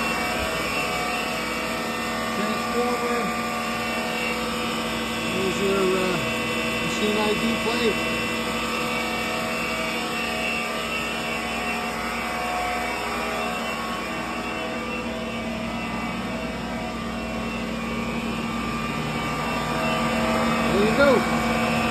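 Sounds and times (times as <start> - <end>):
machine hum with steady tones: 0.0 - 21.9.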